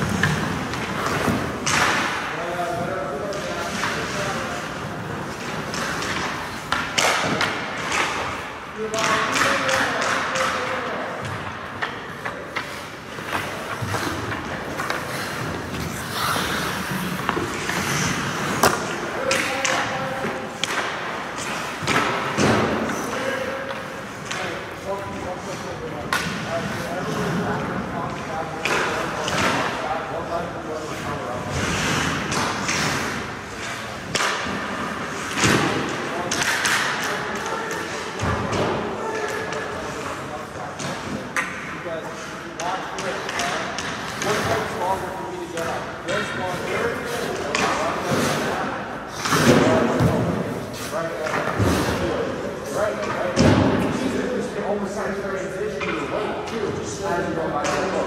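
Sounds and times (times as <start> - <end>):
pucks and sticks knocking: 0.0 - 29.8, 31.5 - 52.1
voices: 0.0 - 58.0.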